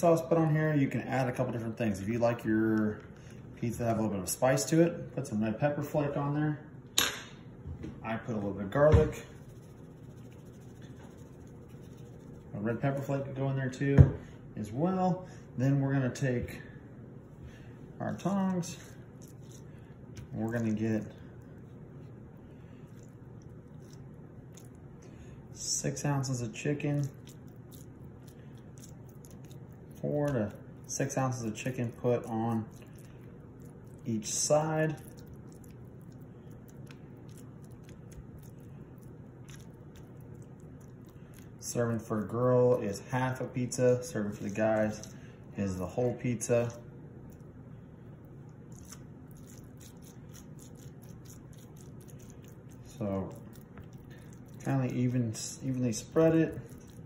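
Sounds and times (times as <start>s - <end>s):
soft squishing of food: 0.0s - 6.5s, 7.5s - 57.0s
low room hum: 0.0s - 57.0s.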